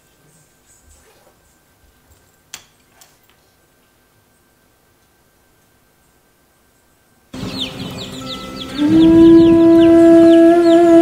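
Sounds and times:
high falling bird chirps: 7.4 - 11.0
held horn note: 8.2 - 11.0.

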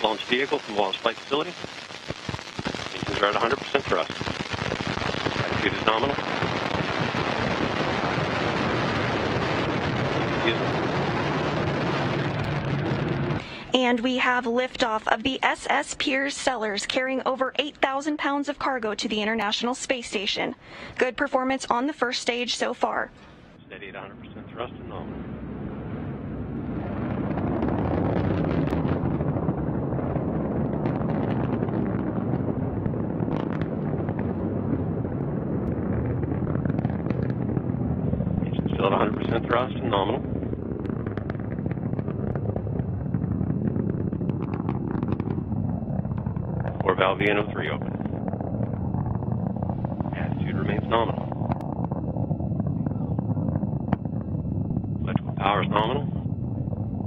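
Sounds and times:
rocket engine deep rumble: 0.0 - 57.0.

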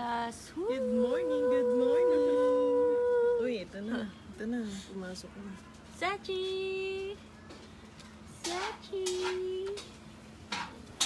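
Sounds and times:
lower wavering howl: 0.5 - 3.6
dog howling: 0.6 - 3.6.

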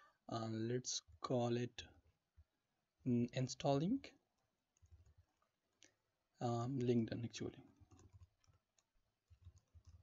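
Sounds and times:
computer keyboard clicks: 7.9 - 10.0.

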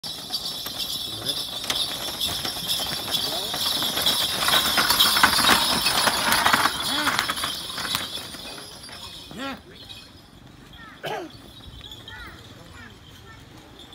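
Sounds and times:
cart rattling: 0.0 - 13.9
hooves galloping on dirt: 0.0 - 13.9
voices calling out: 0.4 - 13.9.

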